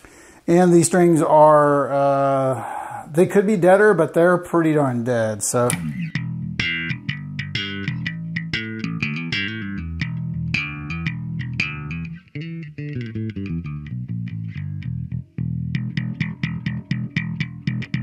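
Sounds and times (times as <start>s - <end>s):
electric bass plucked notes: 5.5s - 18.0s.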